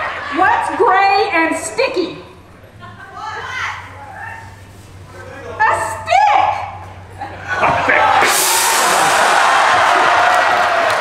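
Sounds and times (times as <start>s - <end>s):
audience cheering: 7.4s - 11.0s
large gong crash: 8.1s - 10.4s.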